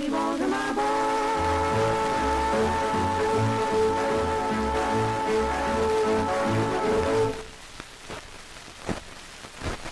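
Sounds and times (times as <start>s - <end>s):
record pop: 0.0s - 9.9s
record surface hiss and crackle: 0.0s - 9.9s
band holding final chord: 0.8s - 7.5s.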